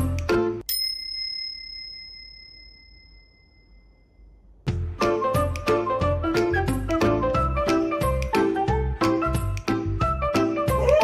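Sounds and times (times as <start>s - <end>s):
bell ringing: 0.6s - 4.4s.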